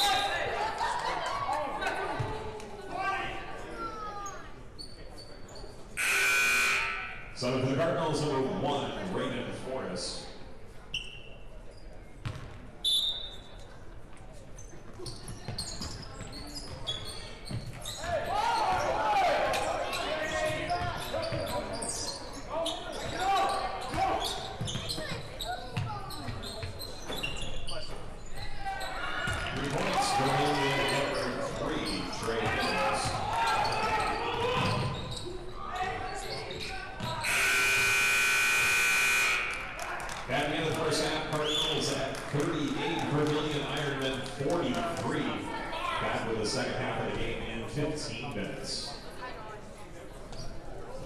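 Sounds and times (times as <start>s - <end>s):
gym horn blast: 6.0s - 7.4s, 37.2s - 39.7s
basketball bouncing: 12.2s - 12.6s
shoes squeaking: 14.6s - 18.8s, 19.8s - 29.6s, 30.7s - 39.5s.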